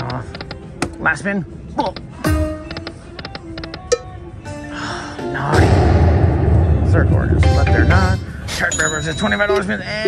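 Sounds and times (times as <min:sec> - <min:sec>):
held electronic chime tones: 0:08.6 - 0:09.8.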